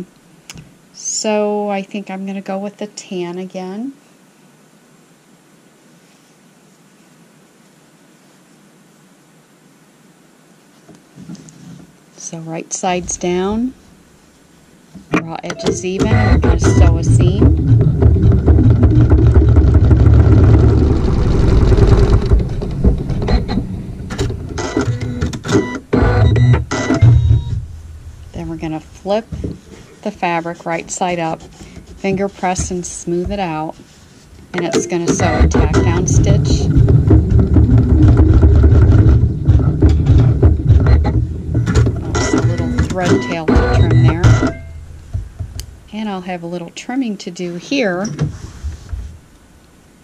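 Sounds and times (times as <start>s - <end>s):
embroidery machine stitching: 15.2s - 27.5s, 34.6s - 44.8s.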